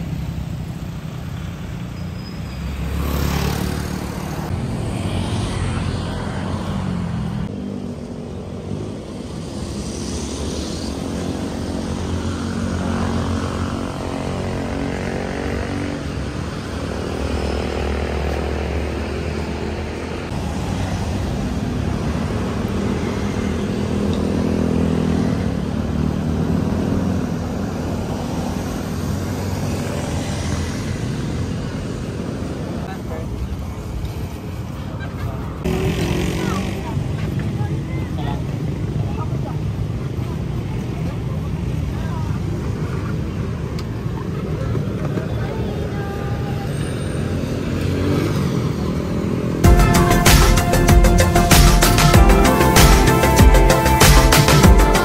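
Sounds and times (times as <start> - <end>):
vehicle engines passing by: 0.0 - 55.0.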